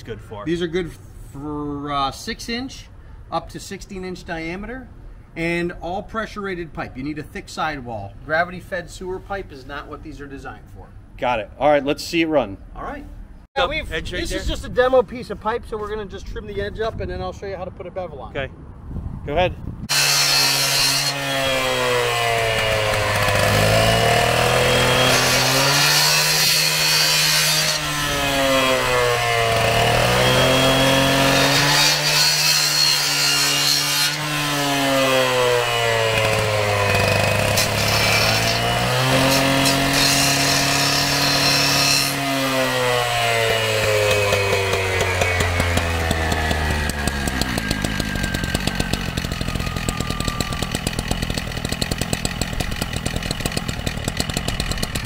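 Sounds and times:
cut-off saw cutting pipe: 19.9s - 55.0s
saw engine idling: 21.8s - 25.5s, 35.6s - 38.2s, 43.4s - 55.0s.

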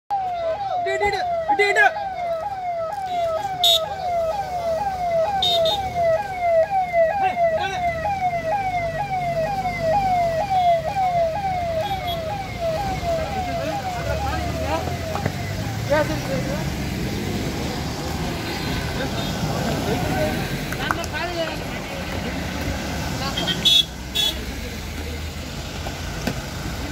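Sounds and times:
vehicle siren sweeping: 0.1s - 23.1s
rumble of passing vehicles: 0.1s - 26.9s.

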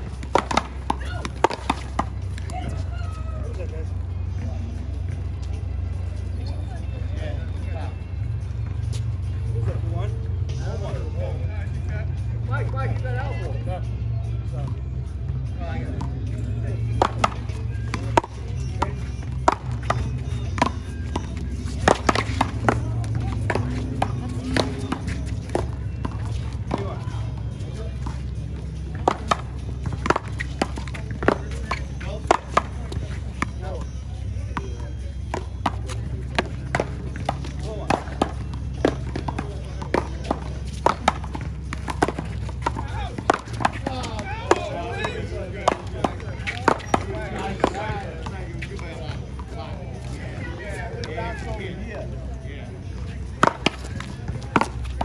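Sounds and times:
paddles striking rubber ball: 0.0s - 2.3s, 16.8s - 27.0s, 28.9s - 33.9s, 35.2s - 47.9s.

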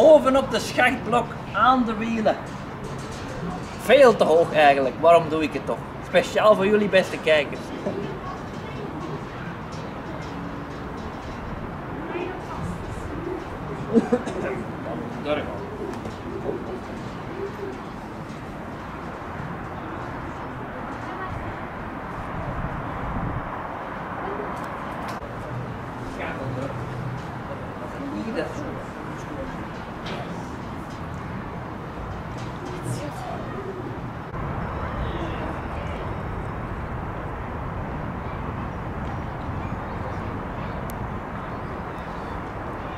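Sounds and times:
low cooing calls: 7.7s - 20.9s, 32.4s - 36.8s
wind noise on microphone: 7.7s - 26.0s, 28.6s - 42.9s.

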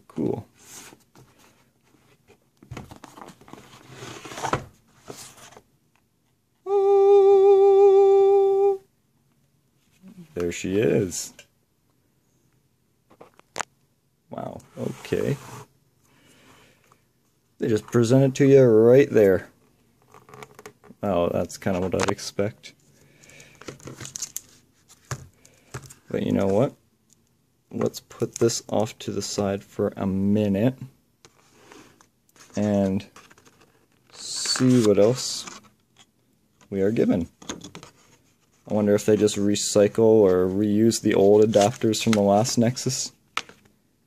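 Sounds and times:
person humming a note: 6.7s - 8.8s.

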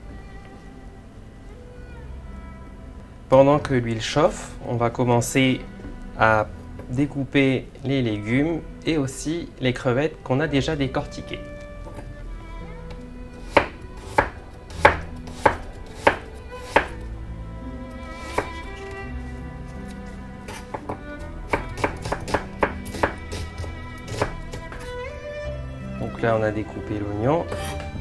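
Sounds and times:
knife chopping on cutting board: 13.5s - 17.0s, 20.5s - 24.9s.

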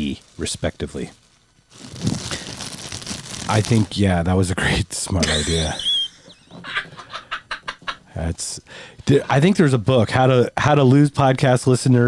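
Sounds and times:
men laughing breathlessly: 5.2s - 8.1s.

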